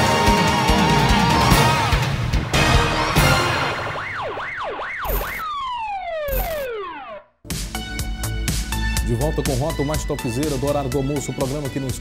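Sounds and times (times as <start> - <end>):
siren wailing: 4.0 - 7.4.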